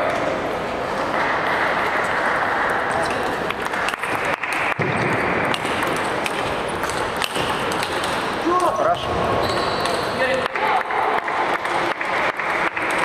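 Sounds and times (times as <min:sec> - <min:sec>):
crowd noise and voices: 0:00.0 - 0:13.0.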